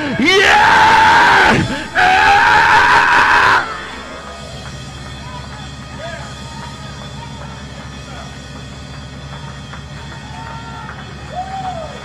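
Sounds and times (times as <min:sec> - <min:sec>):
preacher's high-pitched held cry: 0:00.0 - 0:04.2.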